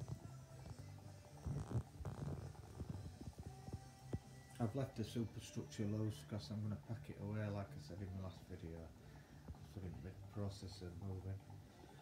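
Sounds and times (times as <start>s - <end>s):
motorized turntable humming: 0.0s - 12.0s.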